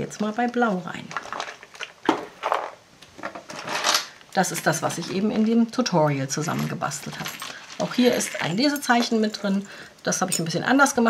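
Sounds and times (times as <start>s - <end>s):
book handling clicks and rustles: 1.0s - 5.7s.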